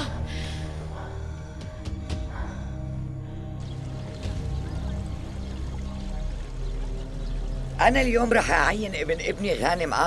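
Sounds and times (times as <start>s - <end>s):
dramatic low held notes: 0.0s - 10.0s.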